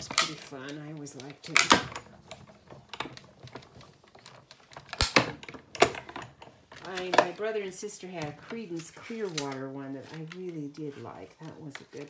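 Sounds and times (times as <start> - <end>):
die-cutting machine clicks and knocks: 1.5 - 7.2.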